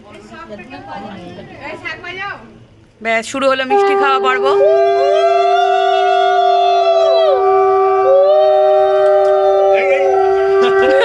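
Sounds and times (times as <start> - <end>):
conch shell bending blasts: 3.7 - 6.2
conch shell steady note: 3.7 - 11.0.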